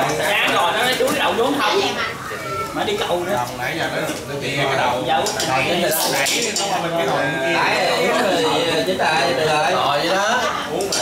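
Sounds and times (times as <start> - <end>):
background chatter: 0.0 - 11.0
tableware clinking: 5.1 - 7.2, 10.4 - 11.0.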